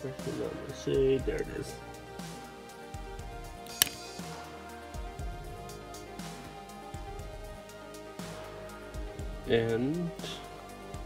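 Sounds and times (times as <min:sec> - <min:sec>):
soft background music: 0:00.0 - 0:11.0
sharp click: 0:03.7 - 0:04.1.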